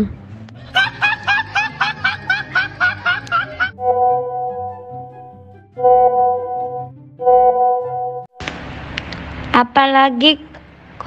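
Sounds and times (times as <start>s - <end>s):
rapid snickering laugh: 0.6s - 3.7s
held musical note: 3.7s - 8.4s.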